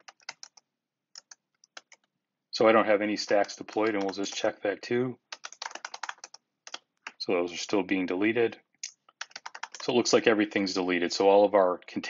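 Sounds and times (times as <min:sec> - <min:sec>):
computer keyboard typing: 0:00.0 - 0:02.1, 0:03.3 - 0:04.5, 0:05.3 - 0:07.2, 0:08.8 - 0:09.9.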